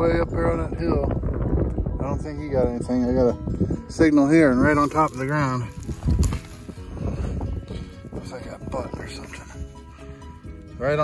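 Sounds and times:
faint background music: 0.0 - 11.0
wind buffeting microphone: 0.0 - 11.0.

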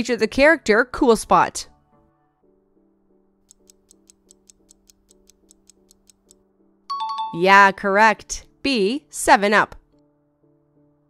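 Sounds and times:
soft sustained music chord: 1.7 - 3.4
clock-like timer ticks: 3.5 - 6.4.

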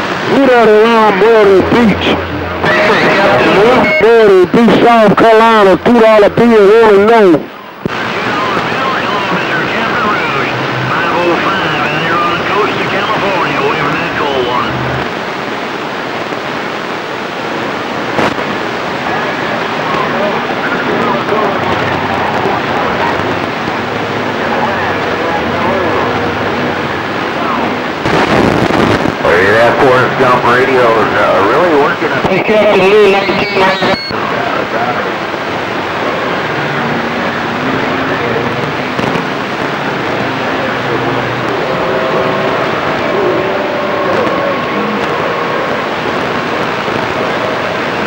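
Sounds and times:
faint garbled radio voices: 0.0 - 48.0
radio static hiss: 0.0 - 48.0.

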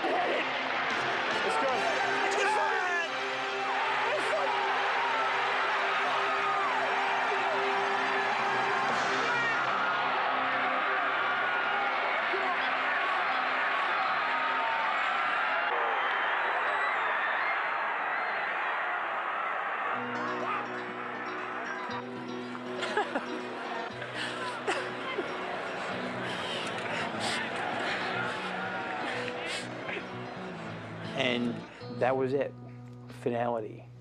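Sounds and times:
stadium crowd yelling and cheering: 0.0 - 31.8.

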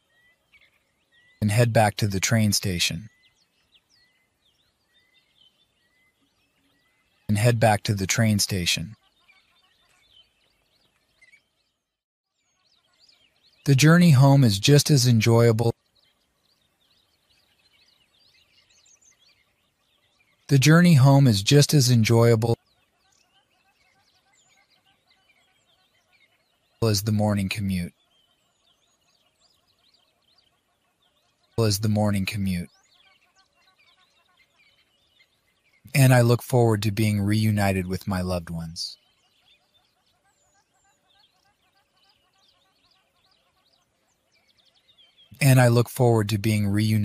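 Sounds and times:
faint bird chirps: 0.0 - 47.0.

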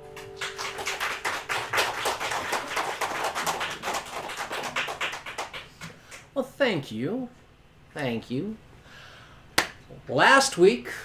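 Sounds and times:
people clapping: 0.0 - 6.3.

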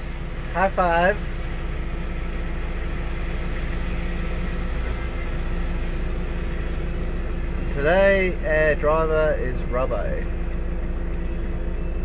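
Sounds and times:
low engine rumble: 0.0 - 12.0.

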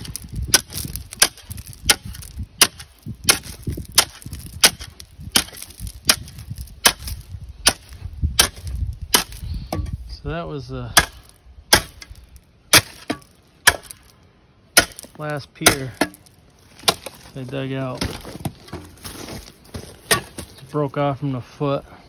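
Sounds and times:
shovel blade striking concrete: 0.0 - 10.0, 11.0 - 14.1, 14.8 - 17.3
concrete breaking up: 14.8 - 20.7.

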